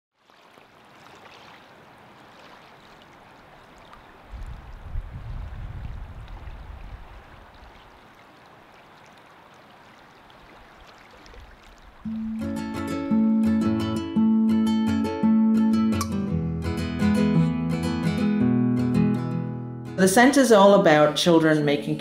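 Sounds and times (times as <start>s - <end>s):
running water: 0.2s - 12.8s.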